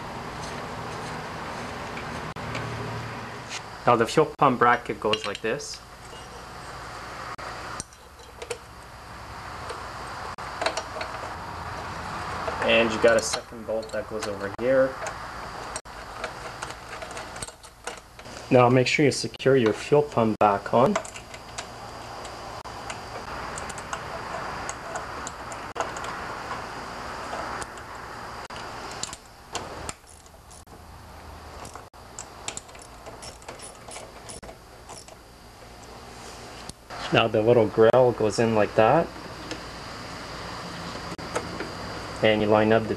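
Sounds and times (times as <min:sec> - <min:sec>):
hand tool and bolts clicking: 0:07.8 - 0:08.9, 0:12.2 - 0:18.3, 0:20.8 - 0:26.6, 0:28.5 - 0:30.7, 0:31.6 - 0:35.9.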